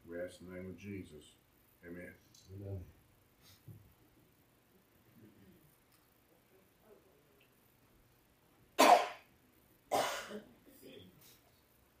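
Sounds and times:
faint throat clearing: 8.8 - 9.3, 9.9 - 10.5
person coughing: 8.8 - 9.3, 9.9 - 10.5.

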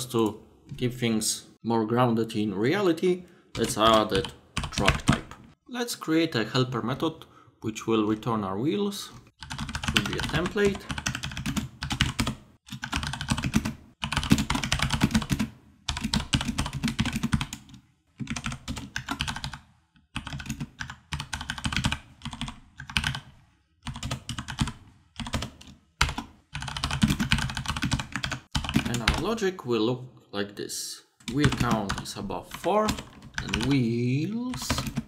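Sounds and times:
computer keyboard typing: 3.6 - 5.4, 9.4 - 29.3, 31.2 - 33.9, 34.5 - 35.0.

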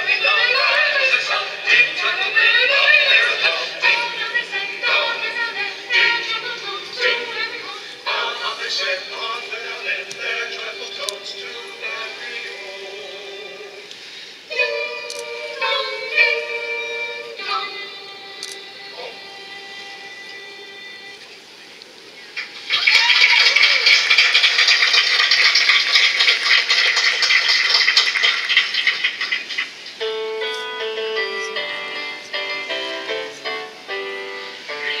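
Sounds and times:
choir singing a carol: 0.0 - 21.6, 31.4 - 35.0
crowd clapping and cheering: 22.4 - 30.0.

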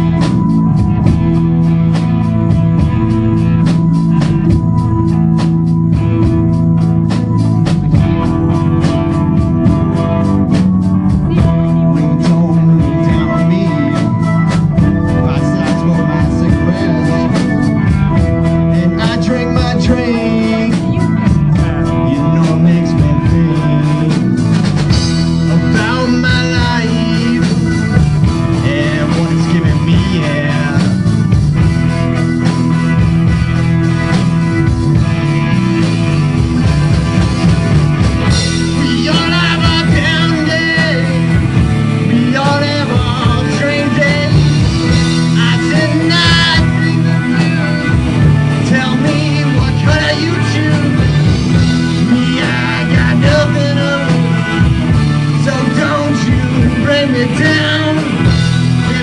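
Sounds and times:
drum kit: 0.0 - 59.0
electric guitars: 0.0 - 59.0.

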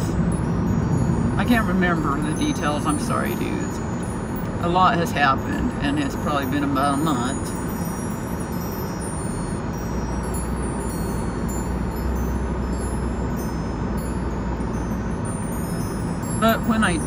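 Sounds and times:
car cabin road and engine noise: 0.0 - 17.0.

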